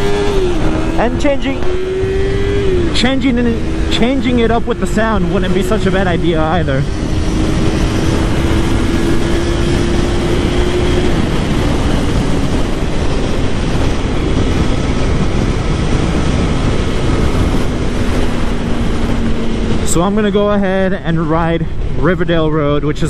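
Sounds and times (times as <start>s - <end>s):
motorcycle engine cruising: 0.0s - 23.0s
wind noise on microphone: 0.0s - 23.0s.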